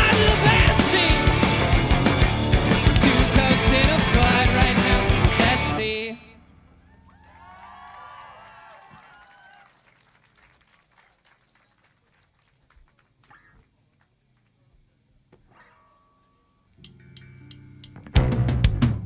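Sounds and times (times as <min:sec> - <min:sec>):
live rock song: 0:00.0 - 0:06.2
crowd whooping and cheering: 0:06.8 - 0:10.2
faint clicks and stage noises: 0:09.9 - 0:15.6.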